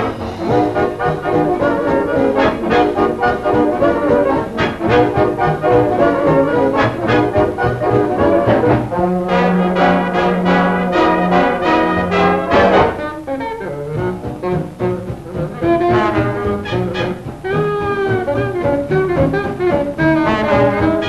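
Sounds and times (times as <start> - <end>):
swing big band playing: 0.0 - 21.0.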